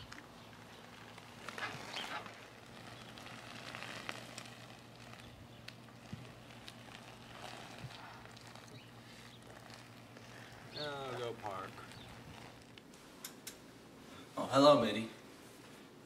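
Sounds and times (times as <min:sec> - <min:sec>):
crackly hiss: 0:00.0 - 0:14.4
low steady hum: 0:00.0 - 0:16.0.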